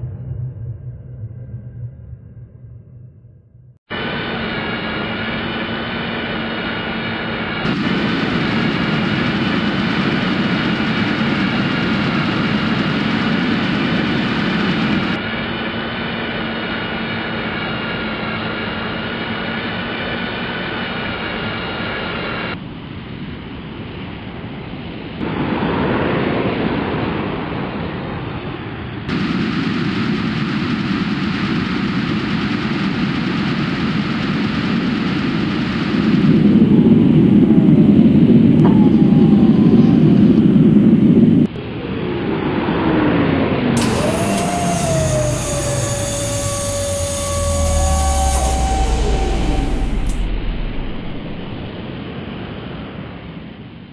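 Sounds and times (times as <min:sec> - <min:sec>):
high whine: 0:00.0 - 0:16.0, 0:29.1 - 0:41.5, 0:43.8 - 0:52.6
jet-like spaceship engine drone: 0:00.0 - 0:22.6, 0:29.1 - 0:42.3, 0:43.6 - 0:52.7.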